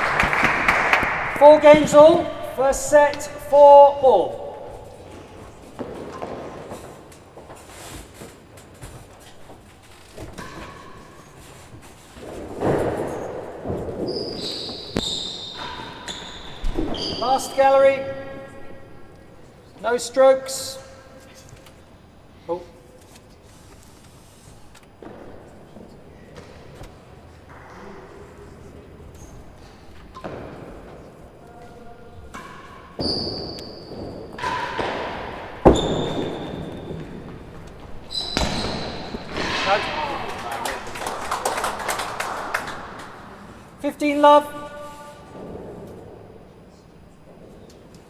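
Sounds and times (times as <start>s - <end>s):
ball knocking off rackets and walls: 32.4s - 37.4s.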